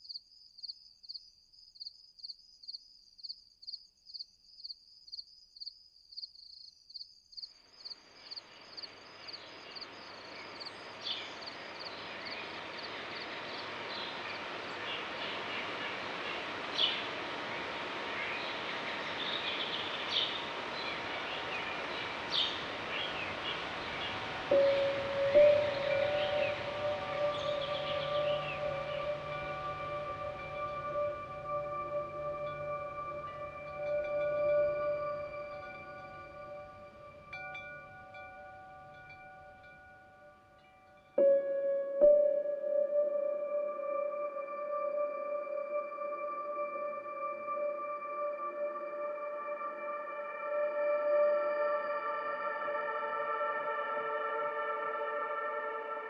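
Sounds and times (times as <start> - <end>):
crickets chirping: 0.0 - 56.0
outdoor ambient wash: 7.4 - 56.0
birds chirping: 8.2 - 38.2
sustained ringing musical tone: 9.1 - 56.0.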